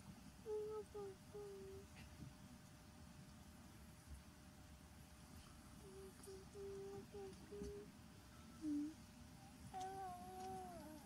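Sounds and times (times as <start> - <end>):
faint voice-like call: 0.4 - 2.1, 5.8 - 7.9, 8.6 - 11.0.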